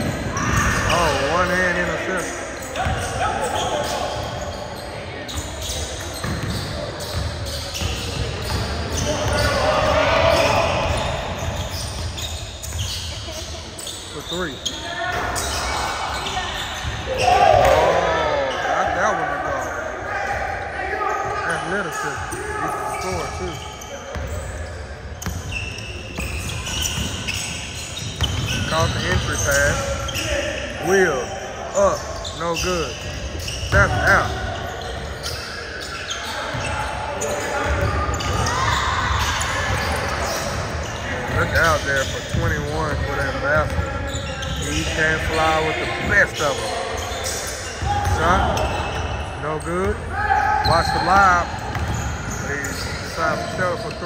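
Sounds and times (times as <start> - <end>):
players calling out: 0.0 - 54.0.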